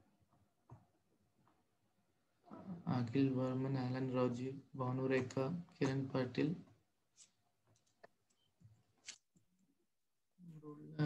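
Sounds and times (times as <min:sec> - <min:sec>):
man talking: 0:02.8 - 0:06.7.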